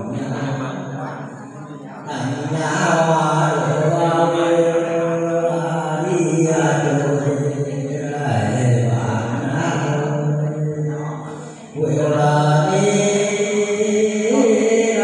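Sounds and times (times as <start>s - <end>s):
man singing unaccompanied: 2.1s - 15.0s.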